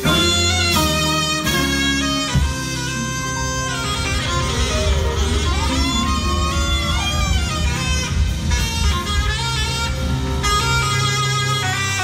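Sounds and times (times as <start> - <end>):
bass line: 0.0 - 12.0
saxophone sustained notes: 0.0 - 12.0.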